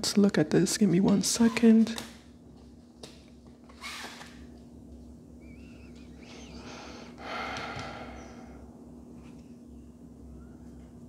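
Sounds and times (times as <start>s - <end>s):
low electrical hum: 0.0s - 11.0s
person breathing: 6.2s - 8.8s.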